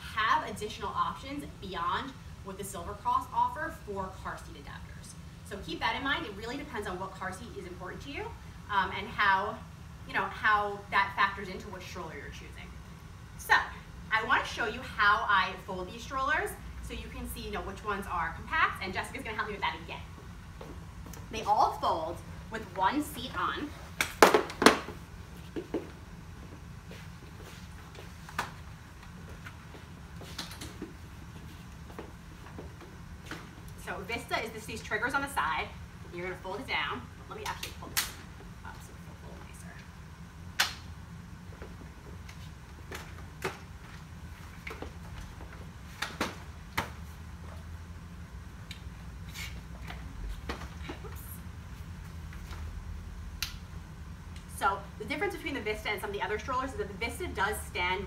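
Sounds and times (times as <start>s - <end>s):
low room hum: 0.0s - 58.0s.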